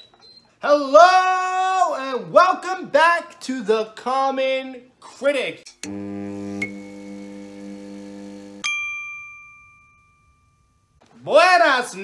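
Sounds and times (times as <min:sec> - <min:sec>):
bright ding ringing: 0:08.6 - 0:10.8.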